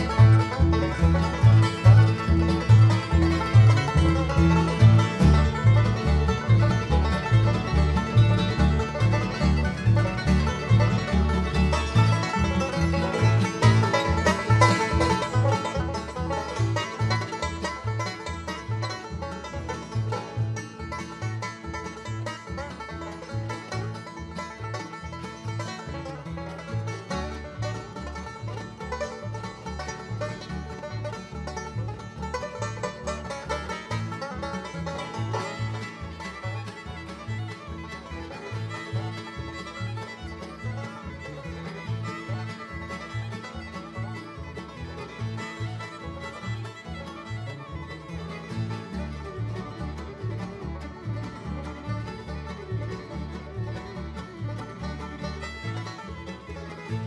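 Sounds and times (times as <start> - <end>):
banjo: 0.0 - 57.0
fiddle: 0.0 - 57.0
guitars: 0.0 - 57.0
mandolin: 0.0 - 57.0
upright bass: 0.0 - 57.0.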